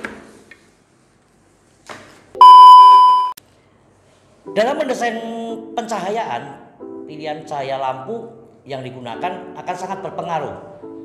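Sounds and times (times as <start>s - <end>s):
loud electronic beep: 2.4s - 3.4s.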